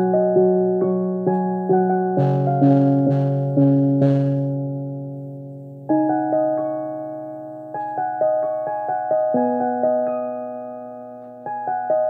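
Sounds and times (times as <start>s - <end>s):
electronic keyboard chords: 0.0s - 12.0s.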